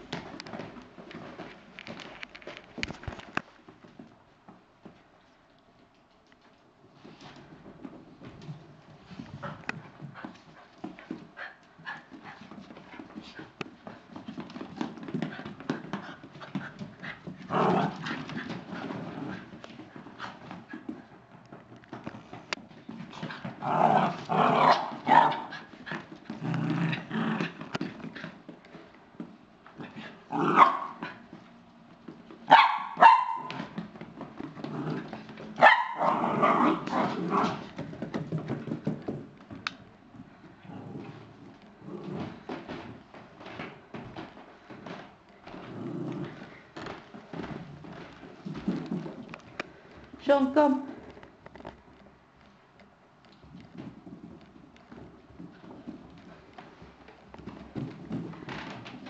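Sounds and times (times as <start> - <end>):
paws tapping on floor: 0.0 - 59.0
small dogs barking and yipping: 32.5 - 33.6, 35.6 - 37.0.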